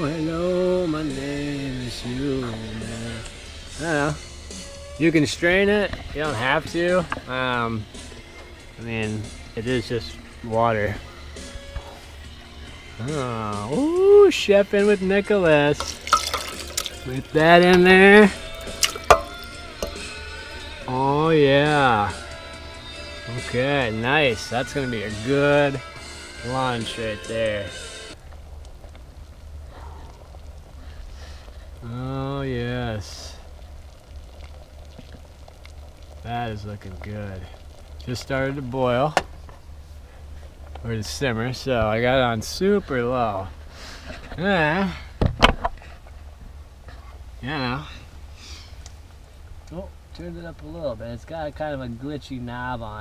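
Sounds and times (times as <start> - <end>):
low steady hum: 15.6 - 53.0
clack against steel pot: 15.8 - 16.9.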